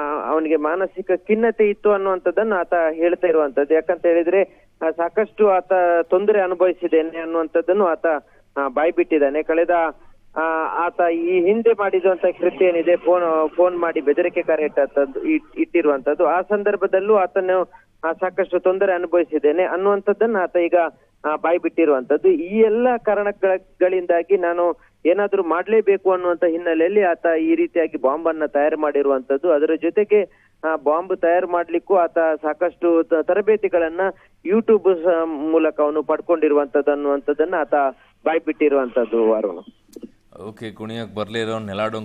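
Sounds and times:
man talking over a telephone line: 0:40.4 - 0:42.0.

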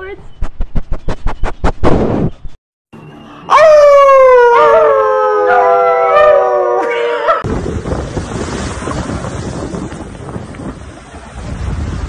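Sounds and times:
small dog howling: 0:03.5 - 0:07.4.

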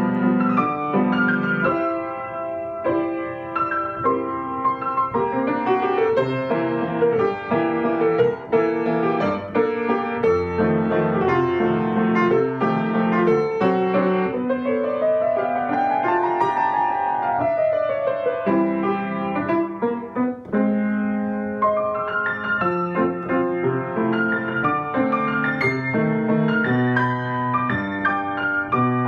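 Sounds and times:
solo grand piano: 0:00.0 - 0:29.0.

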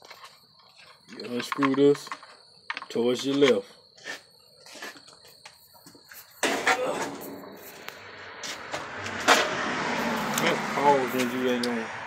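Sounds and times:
handling clicks and rustles: 0:00.0 - 0:06.4.

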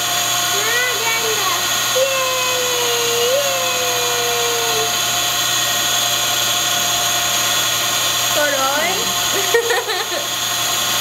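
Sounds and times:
loud machine hum with whine: 0:00.0 - 0:11.0.

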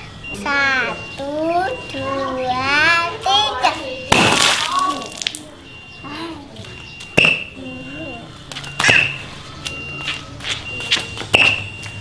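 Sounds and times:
child's voice: 0:00.4 - 0:04.1, 0:06.0 - 0:06.6.

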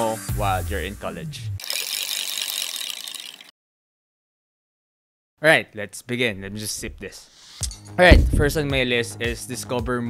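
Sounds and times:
rapid high-pitched clicking: 0:01.6 - 0:03.5.

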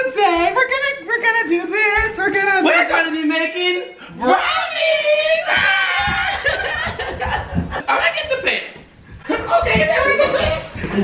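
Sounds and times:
people laughing and calling out: 0:04.2 - 0:08.0.

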